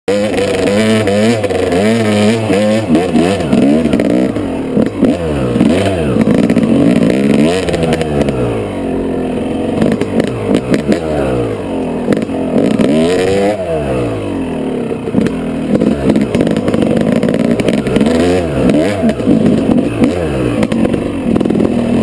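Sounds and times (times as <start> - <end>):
dirt bike engine revving: 0.1 - 22.0.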